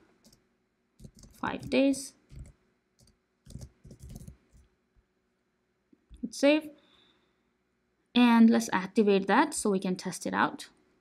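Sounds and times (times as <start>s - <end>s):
typing on computer keyboard: 1.0s - 1.7s, 2.3s - 4.6s.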